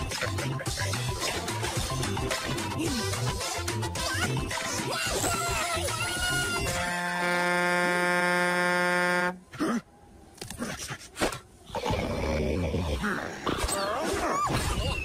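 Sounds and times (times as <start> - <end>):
cartoon music: 0.0 - 7.2.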